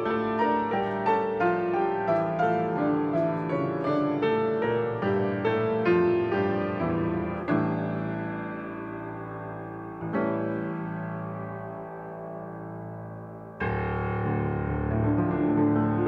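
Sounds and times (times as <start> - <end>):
solo grand piano: 0.0 - 16.0.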